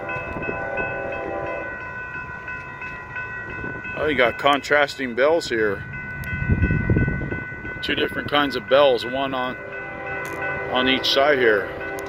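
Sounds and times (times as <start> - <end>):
railroad crossing bells ringing: 0.0 - 12.0.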